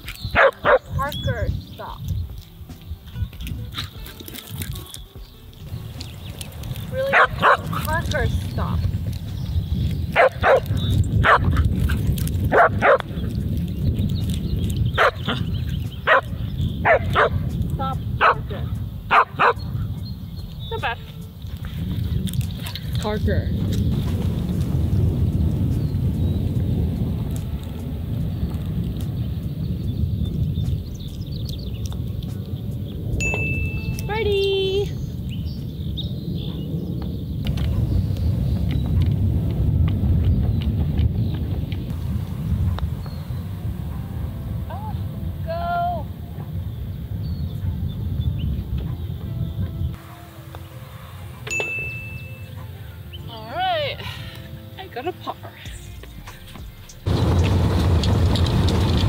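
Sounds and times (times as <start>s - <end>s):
steady low rumble: 0.0s - 59.0s
dog barking: 0.3s - 0.9s, 7.0s - 7.8s, 10.2s - 11.6s, 12.5s - 13.2s, 15.0s - 15.4s, 16.0s - 17.5s, 18.2s - 19.7s, 36.4s - 36.7s, 46.3s - 46.6s, 52.4s - 53.0s.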